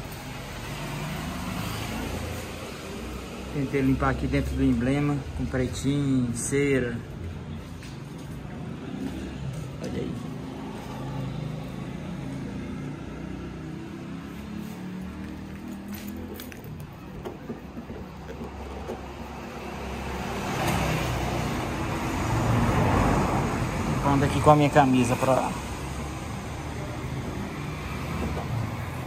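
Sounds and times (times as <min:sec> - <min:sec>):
low rumble of traffic: 0:00.0 - 0:29.0.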